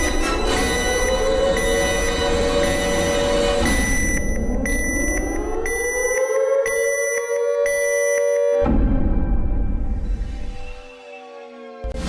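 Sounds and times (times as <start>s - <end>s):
high-pitched repeated beeping: 0.0s - 8.7s
siren wail: 0.0s - 12.0s
low rumble: 8.7s - 10.8s.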